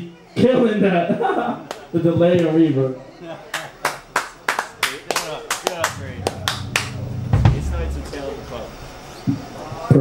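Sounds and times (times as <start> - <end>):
hand claps in steady rhythm: 3.6 - 7.1.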